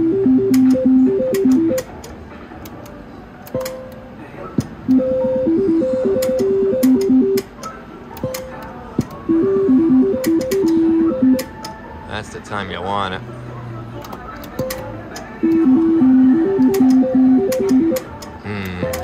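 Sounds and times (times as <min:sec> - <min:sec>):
slot machine spin tune: 0:00.0 - 0:01.9, 0:04.8 - 0:07.5, 0:09.3 - 0:11.6, 0:15.4 - 0:18.1.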